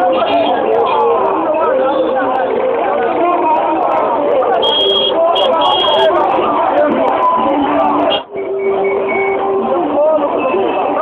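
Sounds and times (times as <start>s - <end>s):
cars and motorbikes moving: 0.0s - 11.0s
voices: 0.0s - 11.0s
long car horn tones: 4.6s - 6.1s.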